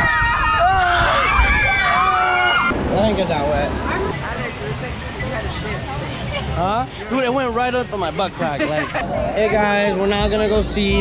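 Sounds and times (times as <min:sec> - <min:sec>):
people screaming: 0:00.0 - 0:02.8
wind noise: 0:00.0 - 0:06.5
rushing water: 0:00.0 - 0:11.0.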